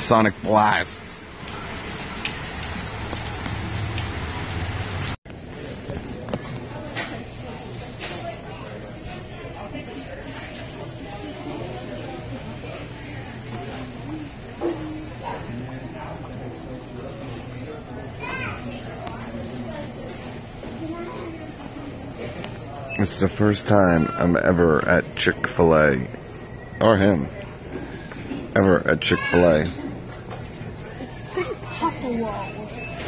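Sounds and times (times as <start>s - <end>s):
steady rain: 0.0s - 5.2s
murmur of voices: 5.4s - 33.0s.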